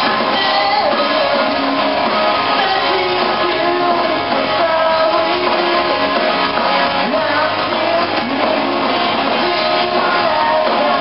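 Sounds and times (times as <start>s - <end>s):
pop-punk band playing live: 0.0s - 11.0s.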